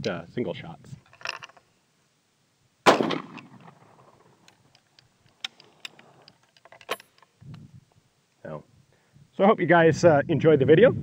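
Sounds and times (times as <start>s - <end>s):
rifle shot: 2.8s - 4.4s
rifle breech clicks: 4.4s - 7.3s.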